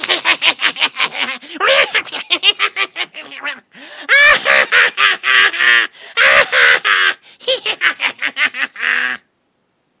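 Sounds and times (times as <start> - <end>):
cackling creature voice: 0.0 - 9.2.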